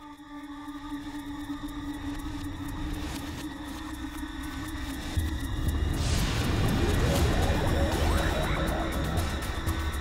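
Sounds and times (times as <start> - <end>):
held drone tones: 0.0 - 10.0
low rumble: 4.5 - 10.0.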